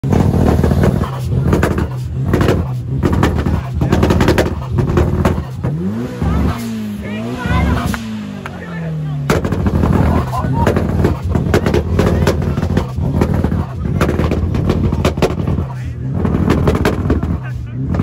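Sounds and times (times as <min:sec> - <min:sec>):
car engine revving: 0:00.0 - 0:18.0
crowd voices: 0:00.0 - 0:18.0
exhaust crackling and banging: 0:00.0 - 0:18.0.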